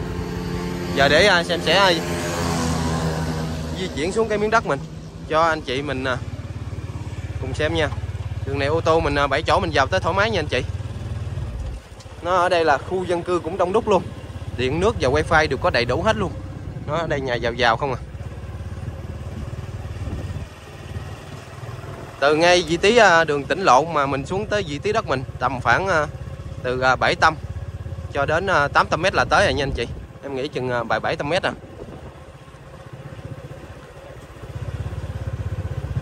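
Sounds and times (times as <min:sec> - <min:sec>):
small motorbike engine running: 0:00.0 - 0:36.0.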